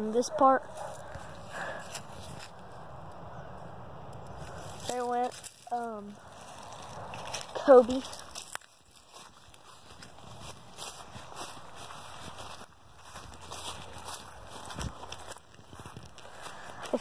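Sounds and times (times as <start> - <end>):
footsteps crunching on ground cover: 0.6 - 2.7, 4.4 - 17.0.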